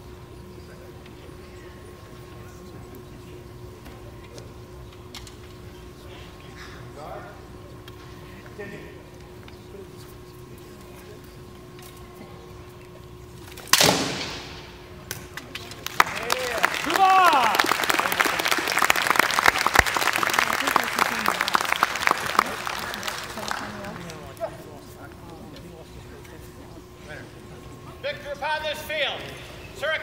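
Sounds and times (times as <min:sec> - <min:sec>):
crowd applauding and cheering: 0:15.6 - 0:24.4.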